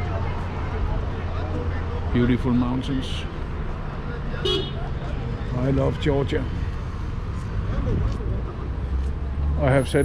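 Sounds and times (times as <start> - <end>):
vehicles rumbling: 0.0 - 10.0
vehicle horn toot: 4.4 - 4.8.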